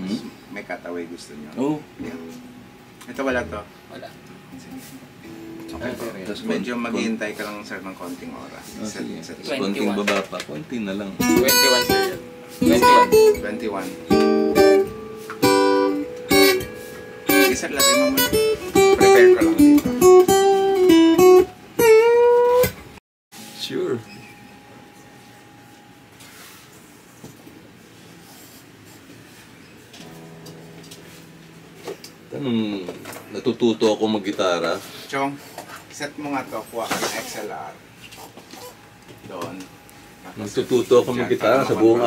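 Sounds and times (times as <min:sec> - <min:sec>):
guitar note ringing: 0:01.7 - 0:03.8, 0:05.2 - 0:22.8, 0:23.4 - 0:27.0, 0:29.9 - 0:34.8
man talking: 0:05.7 - 0:14.0, 0:32.3 - 0:35.4, 0:40.3 - 0:42.0
faint rubbing on guitar: 0:05.8 - 0:06.3, 0:07.0 - 0:09.0, 0:11.2 - 0:16.0, 0:26.2 - 0:27.2, 0:27.8 - 0:31.8.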